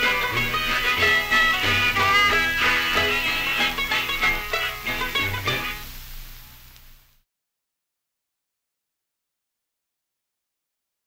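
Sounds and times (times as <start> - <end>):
jug band music from old record: 0.0 - 7.2.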